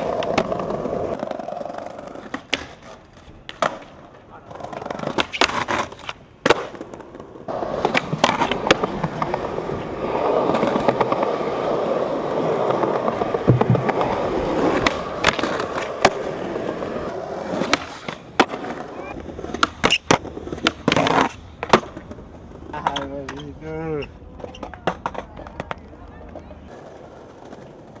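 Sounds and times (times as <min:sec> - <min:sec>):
skateboard clacks: 0:00.0 - 0:28.0
skateboard wheels rolling on paving: 0:00.0 - 0:28.0.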